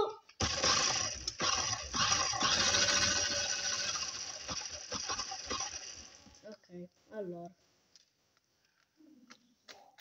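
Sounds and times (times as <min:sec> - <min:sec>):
toy car gears whirring rattle: 0:00.3 - 0:06.4.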